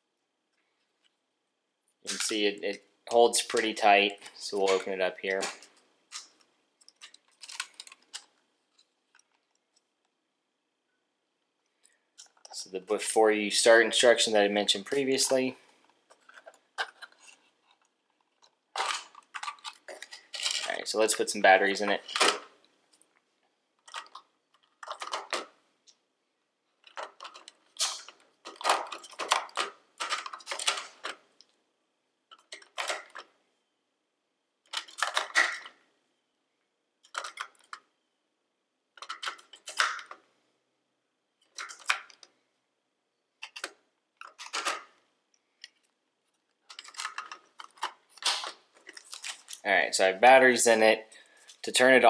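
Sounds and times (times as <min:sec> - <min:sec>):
batteries clicking into compartment: 0:23.8 - 0:25.5, 0:26.8 - 0:31.2, 0:34.7 - 0:35.8, 0:37.0 - 0:37.8, 0:39.0 - 0:40.2, 0:43.4 - 0:44.9, 0:46.7 - 0:49.6.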